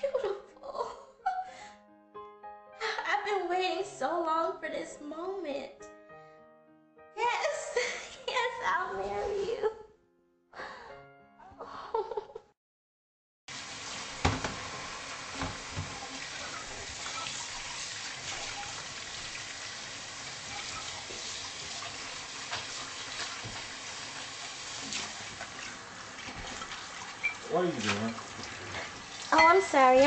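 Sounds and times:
kitchen tap running into sink: 13.5 - 30.0
sharp knocks at sink: 14.2 - 14.7.

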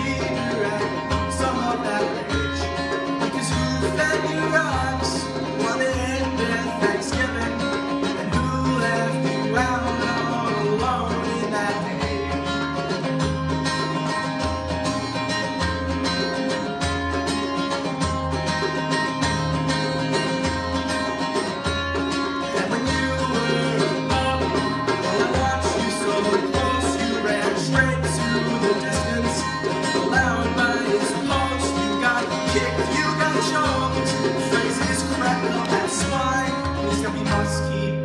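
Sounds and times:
man singing: 0.0 - 13.5, 22.3 - 38.0
acoustic guitar strumming: 0.0 - 38.0.

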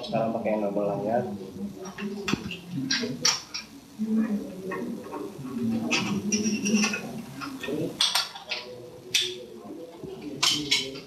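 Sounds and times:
man talking: 0.0 - 3.3, 4.7 - 11.0.

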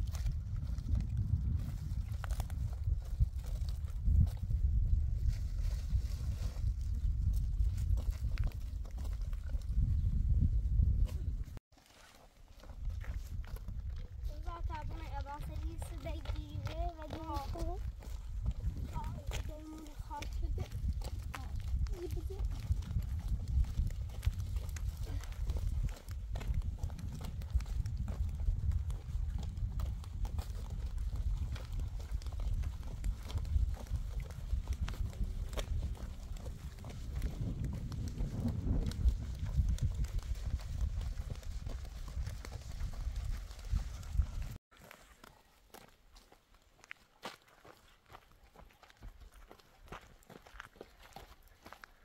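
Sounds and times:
footsteps on rough road: 0.0 - 52.0.

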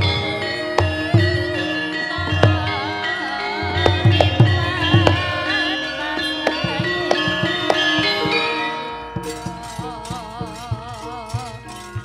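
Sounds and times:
bronze metallophones and gongs ringing: 0.0 - 12.0
gamelan ensemble playing: 0.0 - 12.0
wavering melody line: 0.0 - 12.0.

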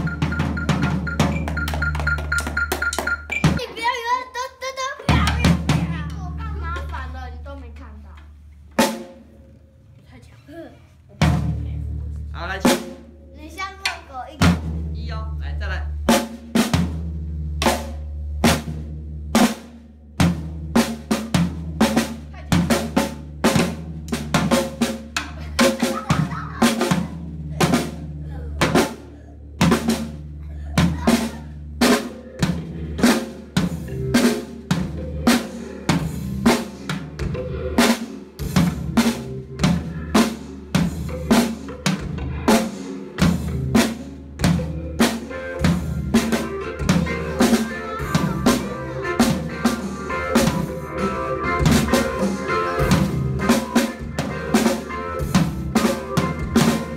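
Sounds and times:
floor tom ringing: 0.0 - 3.7.

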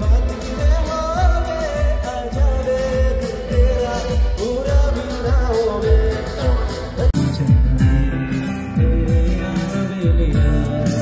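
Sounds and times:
drum beat: 0.0 - 11.0
live band playing: 0.0 - 11.0.

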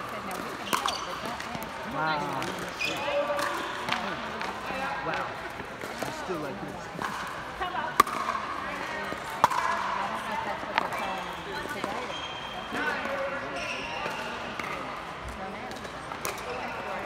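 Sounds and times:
paddles hitting plastic ball: 7.0 - 8.5, 9.1 - 9.8.

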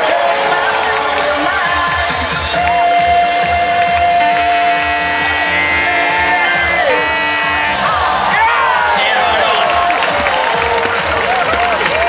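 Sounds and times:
crowd din: 0.0 - 12.0
music: 0.0 - 12.0.

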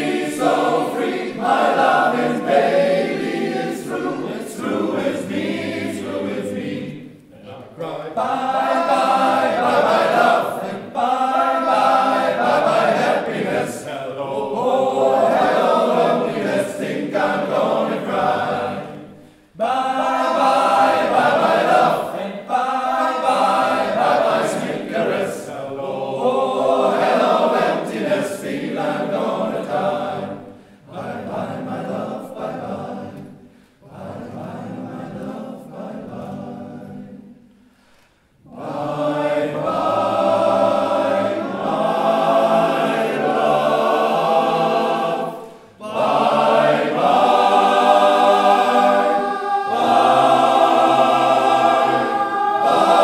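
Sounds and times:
men's choir singing in harmony: 0.0 - 37.8, 38.4 - 53.0.

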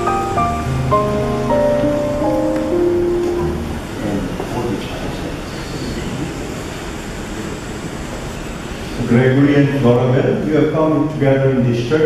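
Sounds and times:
fans and air conditioning hum: 0.0 - 12.0.

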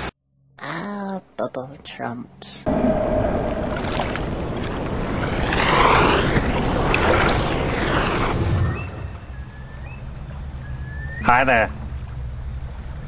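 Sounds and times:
whooshing rush of noise: 2.7 - 9.4
faint whistling glides: 2.7 - 11.4.

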